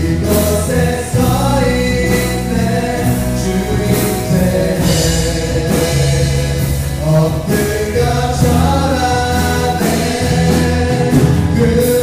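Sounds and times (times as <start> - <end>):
acoustic guitar: 0.0 - 12.0
drum kit with cymbals: 0.0 - 12.0
keyboard: 0.0 - 12.0
person singing: 0.0 - 12.0.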